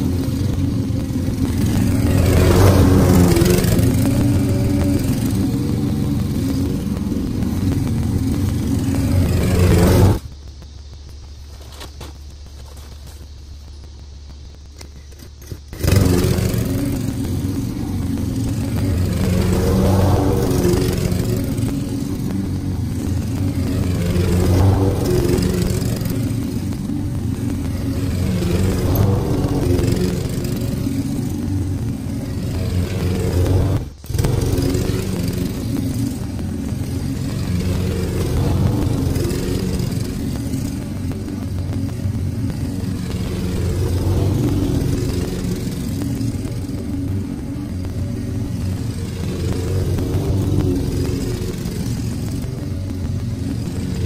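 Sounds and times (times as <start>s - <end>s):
lawn mower engine running: 0.0s - 54.0s.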